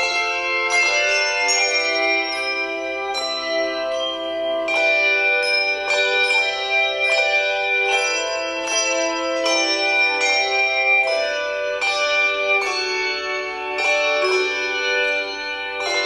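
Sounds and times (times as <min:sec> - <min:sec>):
handbell choir ringing chords: 0:00.0 - 0:16.0.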